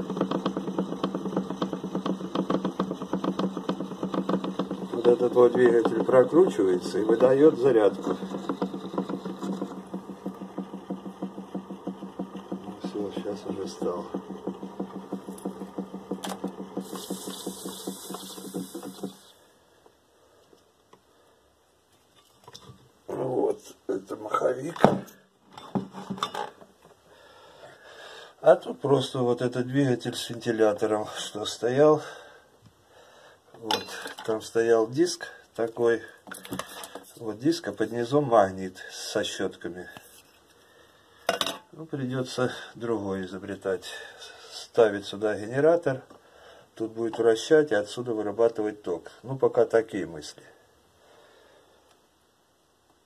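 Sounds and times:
rapid even ticking: 0.0s - 19.3s
electric motor humming: 0.0s - 19.4s
indistinct speech: 12.8s - 14.2s.

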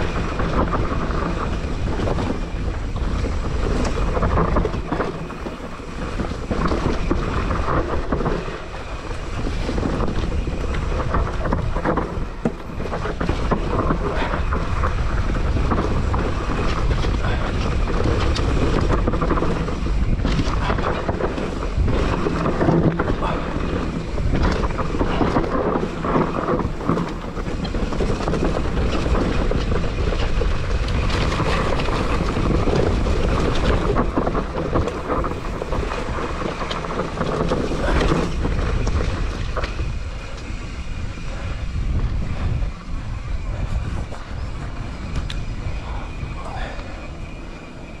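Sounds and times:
bike clattering over ground: 0.0s - 48.0s
bike tyre roar on dirt: 0.0s - 48.0s
wind buffeting microphone: 0.0s - 48.0s.

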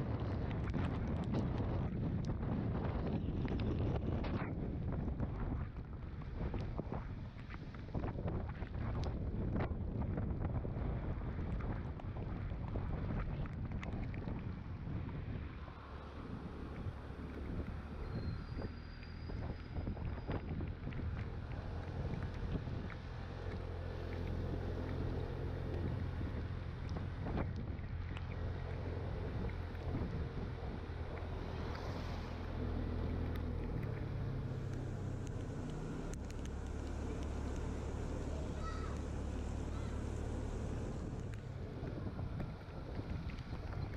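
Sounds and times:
wind on microphone: 0.0s - 43.9s.

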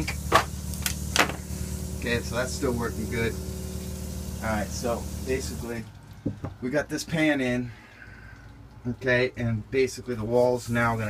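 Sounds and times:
small electric motor humming: 0.0s - 5.7s.

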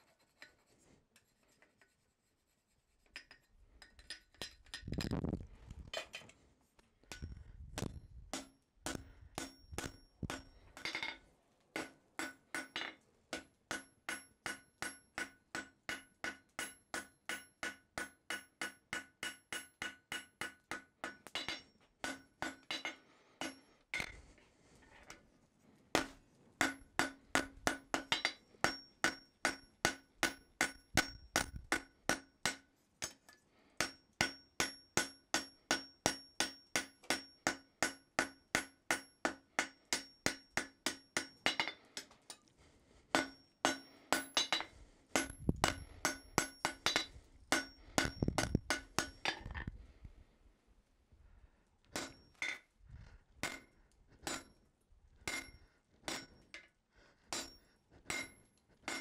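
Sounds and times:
hammer ringing on anvil: 13.7s - 23.6s, 26.0s - 33.2s, 33.8s - 41.8s, 43.2s - 49.2s, 55.3s - 56.4s, 57.3s - 59.0s.

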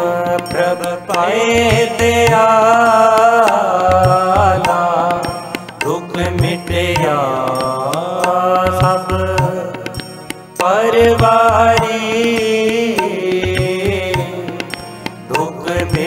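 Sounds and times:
low tabla strokes: 0.0s - 16.0s.

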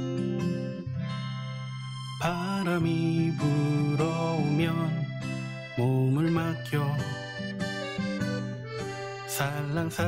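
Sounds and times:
song with long held notes: 0.0s - 10.0s.

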